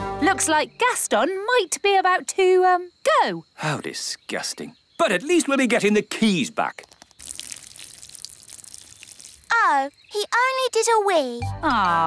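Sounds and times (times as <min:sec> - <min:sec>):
liquid trickling: 0:06.8 - 0:09.8.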